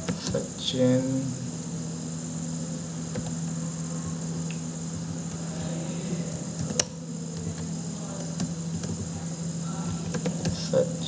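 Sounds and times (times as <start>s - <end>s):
electrical hum: 0.0s - 11.0s
high-pitched whine: 0.0s - 11.0s
computer keyboard clicks: 6.6s - 9.1s, 10.0s - 10.6s.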